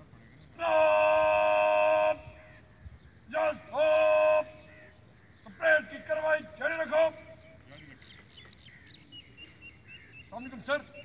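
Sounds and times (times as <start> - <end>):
bugle long note: 0.6 - 2.5, 3.4 - 4.9.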